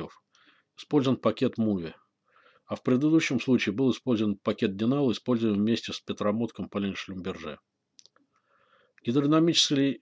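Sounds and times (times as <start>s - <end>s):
person speaking: 0.0s - 2.1s, 2.7s - 8.2s, 9.0s - 10.0s.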